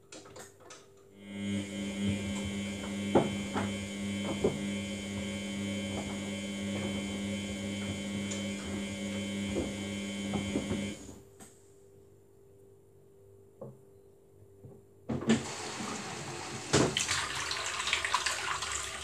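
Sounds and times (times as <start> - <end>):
washing machine drum humming: 1.3 - 11.1, 15.2 - 19.0.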